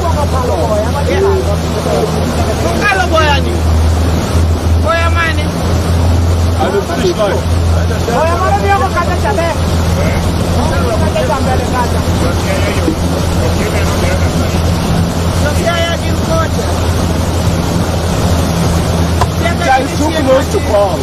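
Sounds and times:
motorboat engine droning: 0:00.0 - 0:21.0
water and wind rushing: 0:00.0 - 0:21.0.

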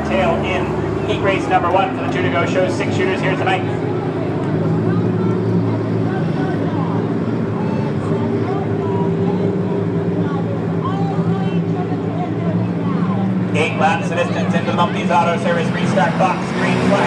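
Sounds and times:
race car engines droning: 0:00.0 - 0:17.0.

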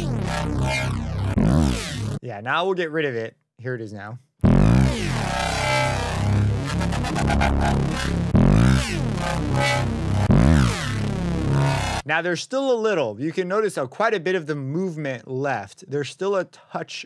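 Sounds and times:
synth bass line with pitch bends: 0:00.0 - 0:02.2, 0:04.4 - 0:12.0.

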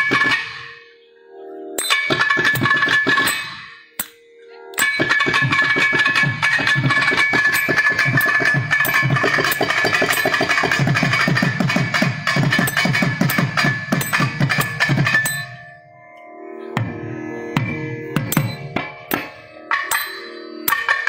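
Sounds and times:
drum stick strokes: 0:04.8 - 0:15.7, 0:17.6 - 0:21.0.

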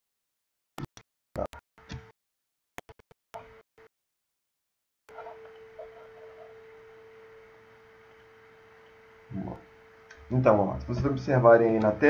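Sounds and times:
thin steady hum: 0:05.1 - 0:12.0.

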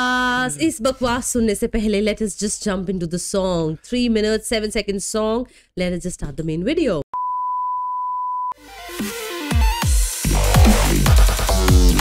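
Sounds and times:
electronic music intro: 0:08.6 - 0:12.0.

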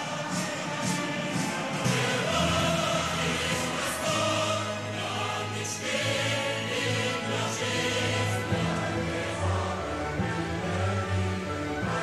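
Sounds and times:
choir singing sustained chords: 0:00.0 - 0:12.0
steady bass line: 0:01.6 - 0:12.0.

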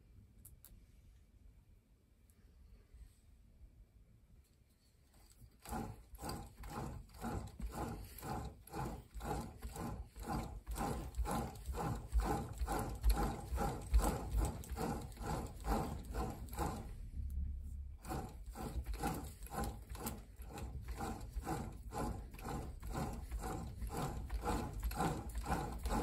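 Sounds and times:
hub whirring clatter: 0:05.2 - 0:26.0.

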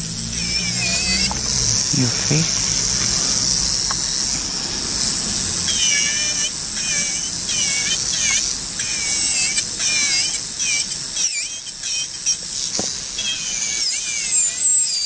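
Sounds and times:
electric nail drill whining: 0:00.0 - 0:15.0.

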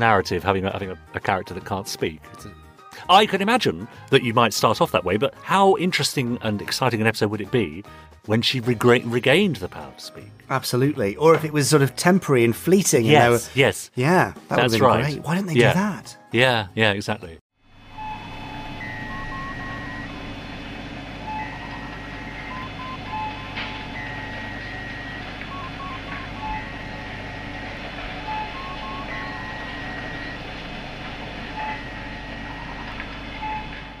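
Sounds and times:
steady low electronic hum: 0:17.7 - 0:34.0
computer-like bleeps: 0:18.0 - 0:20.2, 0:21.3 - 0:30.4, 0:31.6 - 0:34.0.

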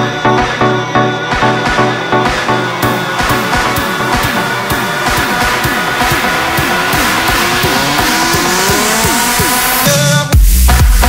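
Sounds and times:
rising synth lines: 0:00.0 - 0:10.3
kick-drum beat: 0:00.0 - 0:11.0.

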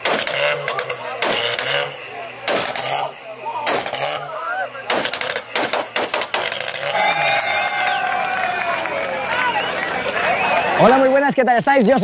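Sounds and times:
exhaust pops and crackles: 0:00.0 - 0:10.6
car engine idling and revving: 0:00.0 - 0:12.0
crowd shouting: 0:02.1 - 0:11.2.

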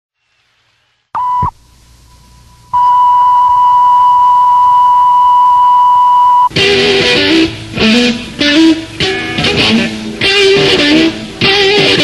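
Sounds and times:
electronic beep tone: 0:01.2 - 0:01.5, 0:02.8 - 0:06.5.

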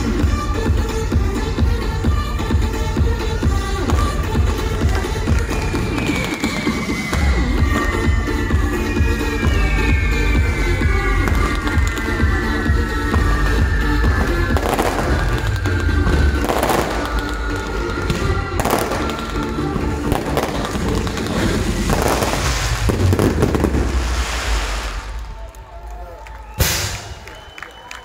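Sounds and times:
loud music with heavy bass: 0:00.0 - 0:24.2
firework fountains hissing and crackling: 0:00.0 - 0:27.8
firework bangs: 0:03.8 - 0:25.5, 0:26.5 - 0:27.6.

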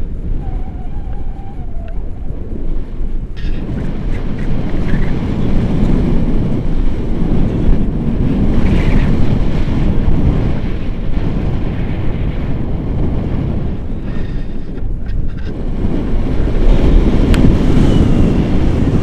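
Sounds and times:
gusty wind noise on microphone: 0:00.0 - 0:19.0.

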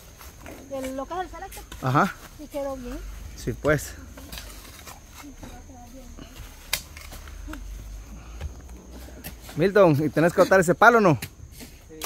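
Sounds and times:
metal shovels scraping sand: 0:03.8 - 0:05.4.

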